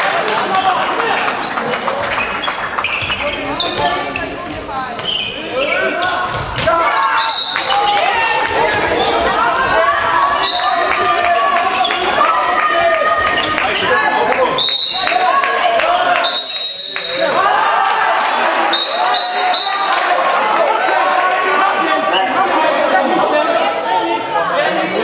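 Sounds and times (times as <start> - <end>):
voices shouting in echoing hall: 0.0 - 25.0.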